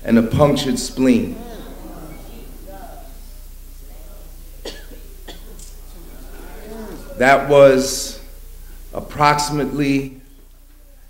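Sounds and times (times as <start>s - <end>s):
low electrical hum: 0.0s - 11.0s
person coughing: 4.6s - 5.7s.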